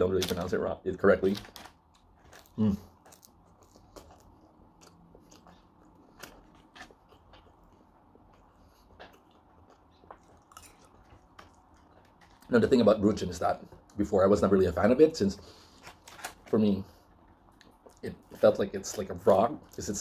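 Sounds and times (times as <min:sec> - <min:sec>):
person chewing bread: 0:01.5 - 0:12.6, 0:15.4 - 0:20.0.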